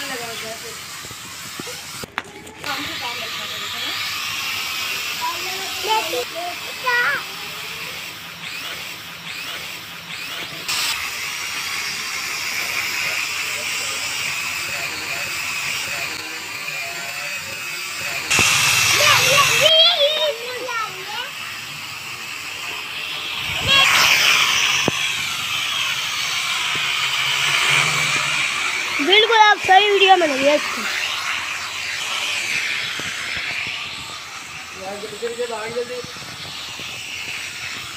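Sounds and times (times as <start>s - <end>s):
drone propellers buzzing: 0.0s - 37.9s.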